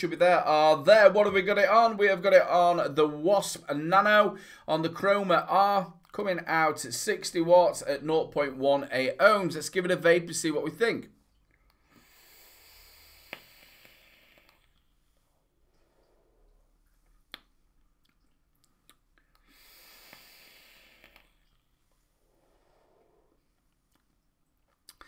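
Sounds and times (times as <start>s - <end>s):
faint hiss of air through vape: 11.8s - 17.5s, 19.2s - 23.8s.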